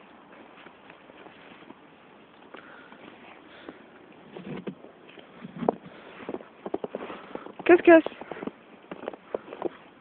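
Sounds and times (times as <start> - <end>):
footsteps crunching in snow: 0.3 - 10.0.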